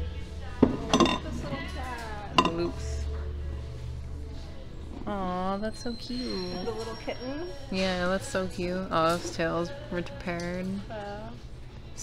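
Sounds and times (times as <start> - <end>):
glass dish clinking on ceramic plate: 0.6 - 1.4, 2.4 - 2.7.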